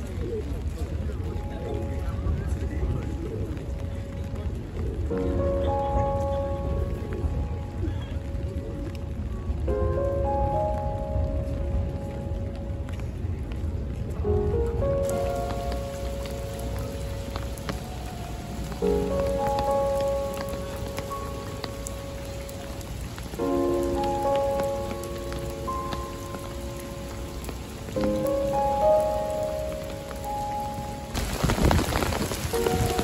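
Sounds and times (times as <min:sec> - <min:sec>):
rain on stone paving: 0:00.0 - 0:33.0
soft background music: 0:00.0 - 0:33.0.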